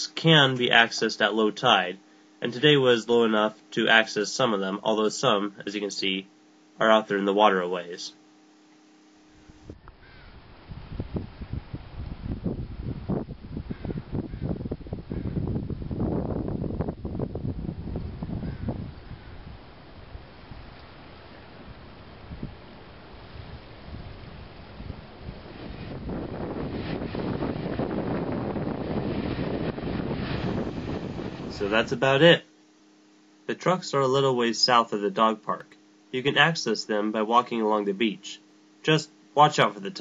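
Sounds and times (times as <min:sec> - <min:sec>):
wind buffeting microphone: 0:09.6 - 0:20.8, 0:21.6 - 0:32.0.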